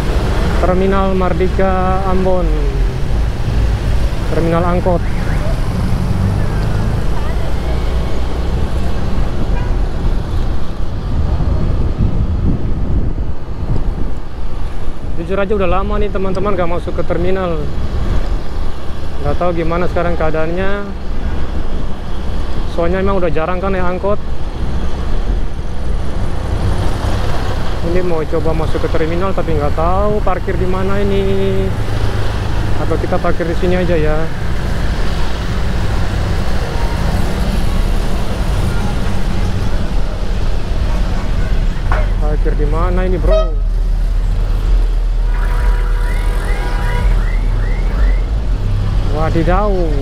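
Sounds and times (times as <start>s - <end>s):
motorcycle engine and road noise: 0.0s - 50.0s
traffic: 0.0s - 50.0s
motorcycle engine rumble: 29.1s - 50.0s.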